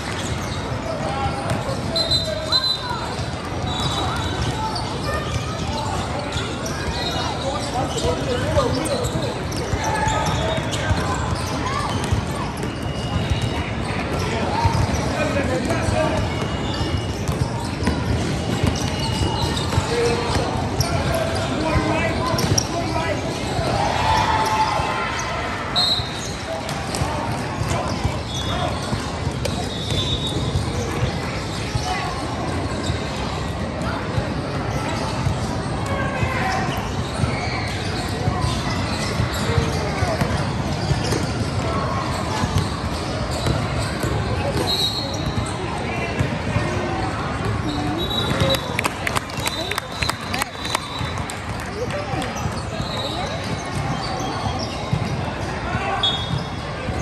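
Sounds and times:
echoing voices in a hall: 0.0 - 57.0.

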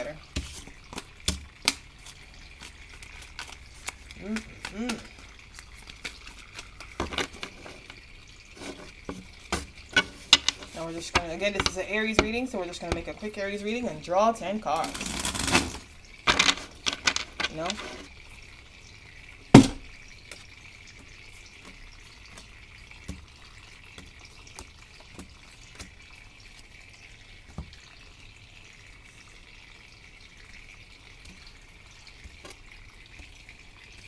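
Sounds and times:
tabletop fountain trickling: 0.0 - 34.0
cards shuffled and dealt: 2.0 - 7.4.

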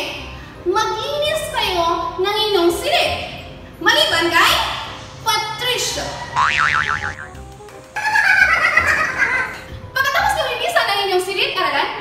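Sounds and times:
cartoon boing: 6.4 - 7.4.

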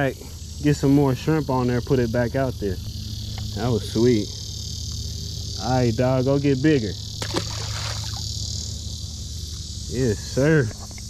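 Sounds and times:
insects chirring: 0.0 - 11.0
low steady hum: 0.0 - 11.0.

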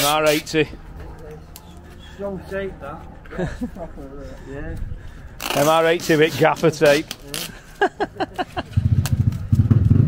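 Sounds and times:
motorcycle engine throbbing: 8.7 - 10.0.

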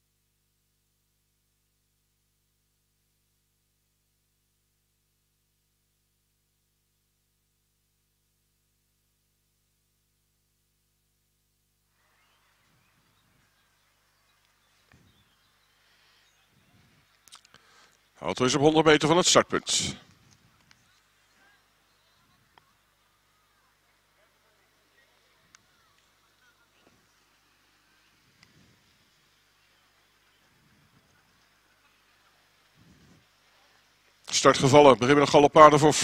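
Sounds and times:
faint low hum: 0.0 - 36.0.

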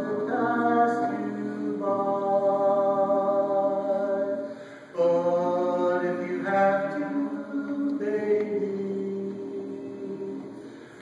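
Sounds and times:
male vocal quartet singing: 0.0 - 11.0.

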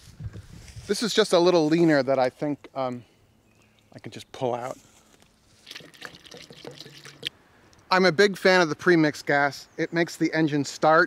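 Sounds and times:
fuel trickling through funnel: 5.5 - 7.3.

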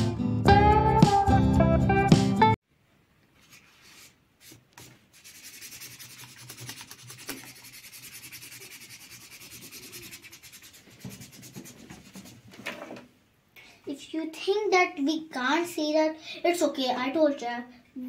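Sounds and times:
marker scratching on paper: 3.4 - 12.4.

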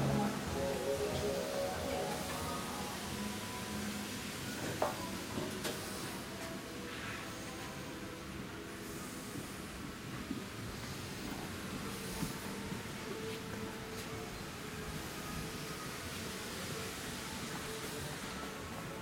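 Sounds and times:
low hum and hiss: 0.0 - 5.3
faint background music: 0.0 - 19.0.

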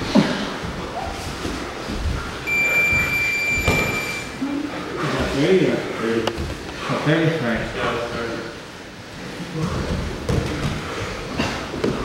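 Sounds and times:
rustle and thuds on mats: 0.0 - 2.4, 9.2 - 12.0
electronic timer beep: 2.5 - 4.4.

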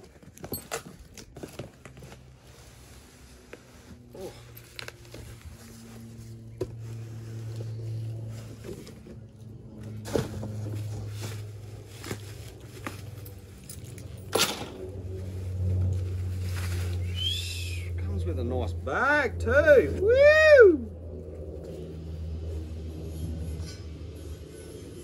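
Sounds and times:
low background hum: 0.0 - 25.0.

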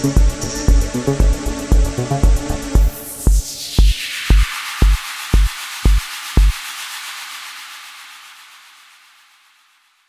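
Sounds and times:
kick drum beating: 0.2 - 6.6.

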